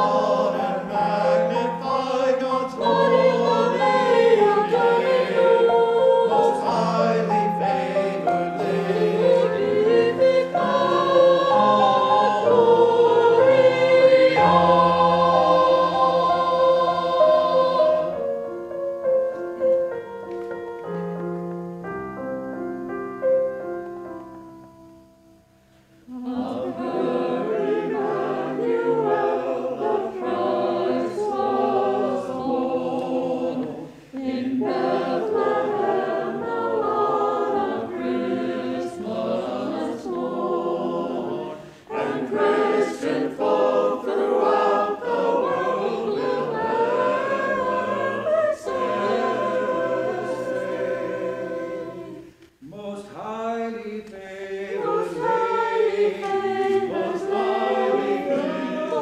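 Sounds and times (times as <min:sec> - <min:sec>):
mixed choir singing a hymn: 0:00.0 - 0:18.5, 0:26.0 - 0:59.0.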